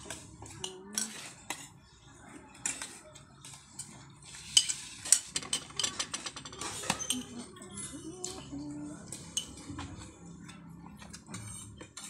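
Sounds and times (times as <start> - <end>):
spoons and plates clinking: 2.6 - 8.5.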